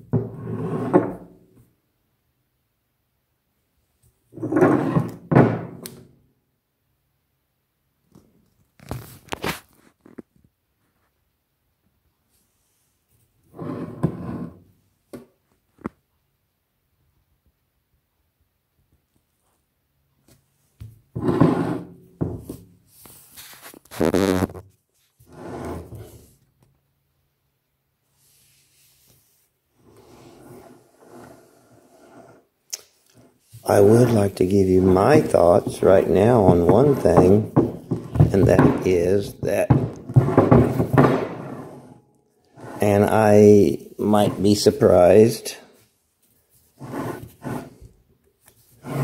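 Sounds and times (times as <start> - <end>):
heavy stone scraping on wooden table: 0.1 - 1.4, 4.3 - 5.7, 13.5 - 14.6, 21.1 - 22.6, 25.2 - 26.3, 29.8 - 32.5, 33.2 - 43.4, 44.1 - 44.7, 46.8 - 47.9, 48.7 - 49.0
man speaking indistinctly: 33.6 - 37.6, 38.2 - 39.9, 42.8 - 45.7.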